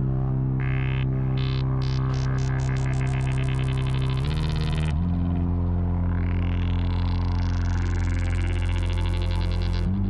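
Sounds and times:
electronic music with synth drone: 0.0s - 10.0s.

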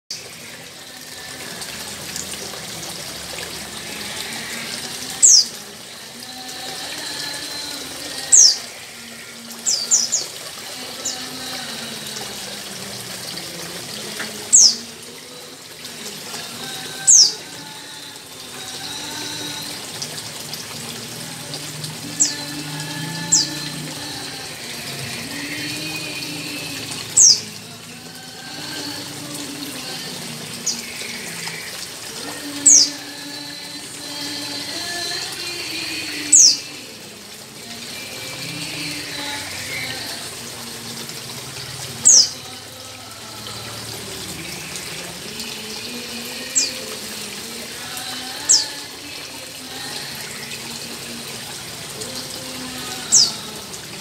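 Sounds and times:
running splashing water: 0.1s - 54.0s.

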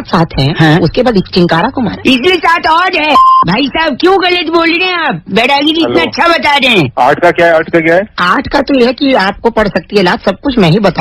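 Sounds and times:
short electronic beep: 3.1s - 3.5s
man talking: 5.8s - 8.1s.

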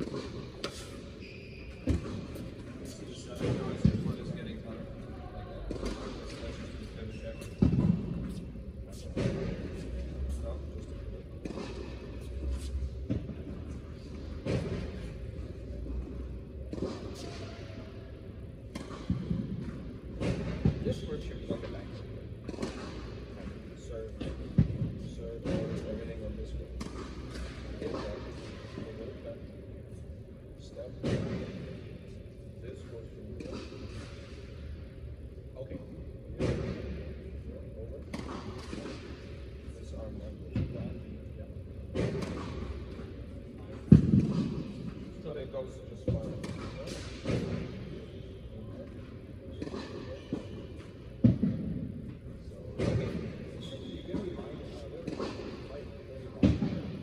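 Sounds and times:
indistinct talking in echoing hall: 0.0s - 57.0s.

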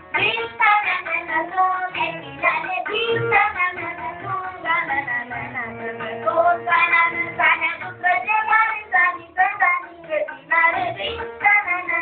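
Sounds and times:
child singing classical vocal music: 0.1s - 12.0s.

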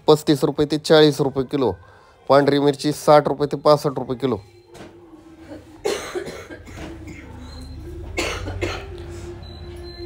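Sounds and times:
person coughing: 5.4s - 7.4s, 8.2s - 9.0s.

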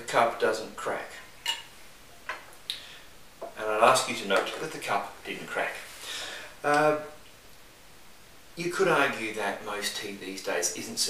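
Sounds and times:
tableware clinking: 1.4s - 1.7s.

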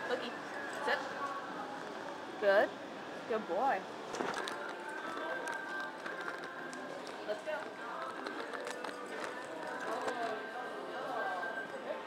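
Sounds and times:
indistinct background voices: 0.0s - 12.0s.

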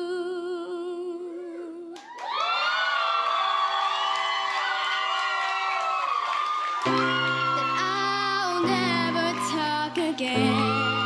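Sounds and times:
crowd cheering and screaming: 2.1s - 11.0s
song accompaniment music: 6.9s - 11.0s.

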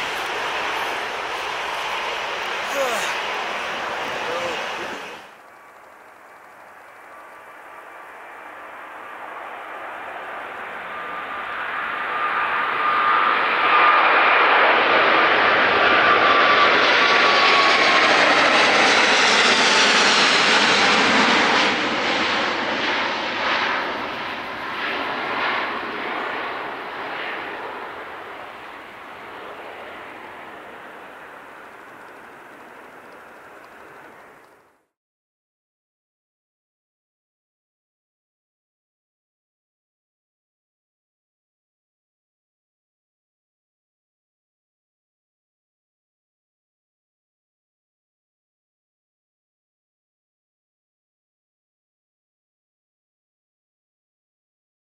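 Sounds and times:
jet engines at takeoff: 0.0s - 34.8s.

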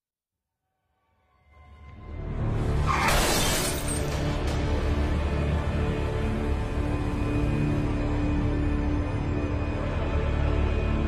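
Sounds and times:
dramatic film score: 1.0s - 11.0s
car glass shattering: 2.9s - 4.3s.

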